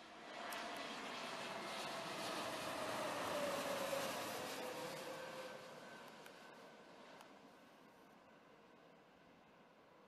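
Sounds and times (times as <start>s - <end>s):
jet airliner passing overhead: 0.0s - 10.0s
steady jet engine whine: 0.0s - 10.0s.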